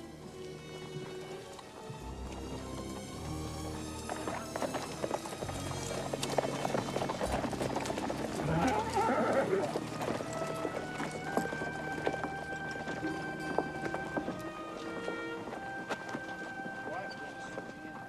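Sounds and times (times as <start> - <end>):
horses' hooves clopping on dirt: 0.0 - 18.0
orchestral film score: 0.0 - 18.0.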